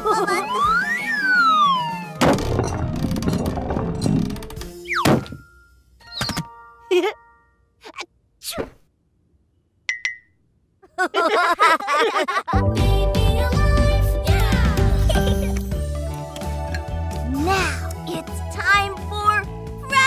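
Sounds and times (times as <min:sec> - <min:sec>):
cartoon thunk: 0:02.2 - 0:04.0, 0:04.9 - 0:05.4.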